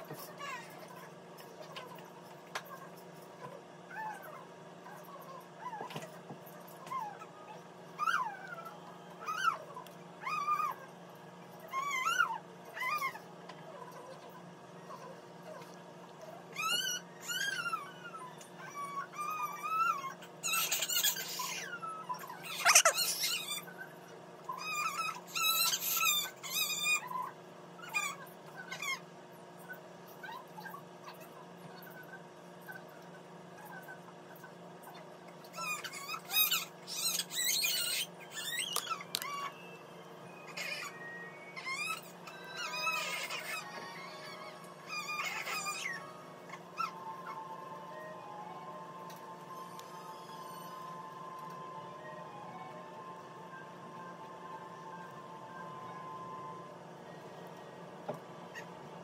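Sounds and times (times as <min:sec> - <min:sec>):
animal whining calls: 0:06.7 - 0:29.1, 0:35.5 - 0:51.3.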